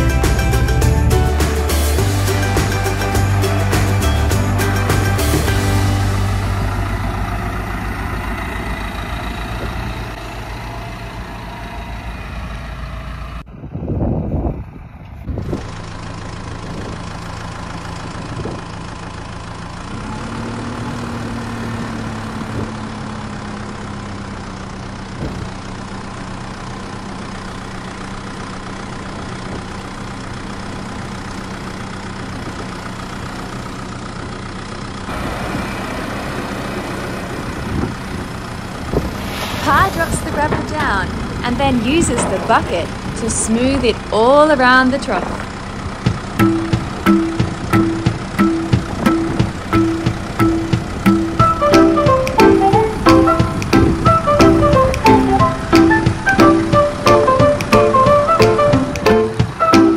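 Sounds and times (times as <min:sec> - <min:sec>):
loud low rumble: 0:00.0 - 0:17.2, 0:37.2 - 0:51.1
tractor diesel engine running: 0:00.0 - 0:59.9.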